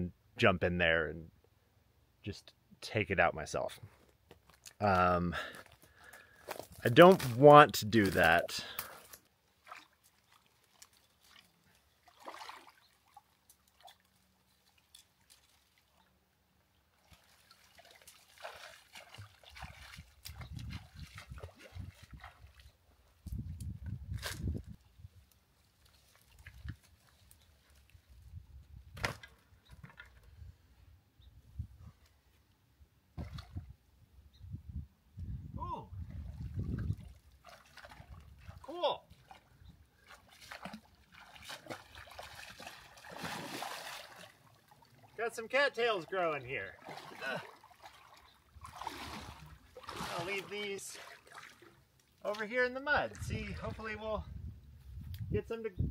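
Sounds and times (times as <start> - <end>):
water splashing and sloshing: 5.5 - 23.4, 24.1 - 28.2, 33.2 - 33.7, 36.0 - 54.0
branches dragged through water: 9.6 - 12.8, 46.8 - 52.5
distant water splashing: 37.0 - 45.3, 46.1 - 52.7.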